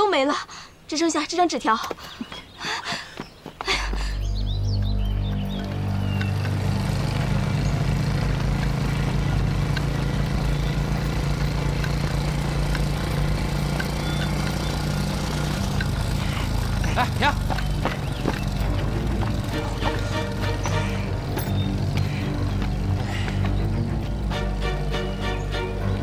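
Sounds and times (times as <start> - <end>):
motorcycle engines running: 3.7 - 26.0.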